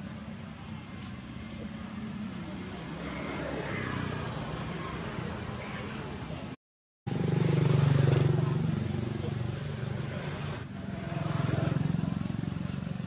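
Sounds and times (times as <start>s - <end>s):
engine running: 7.1s - 13.0s.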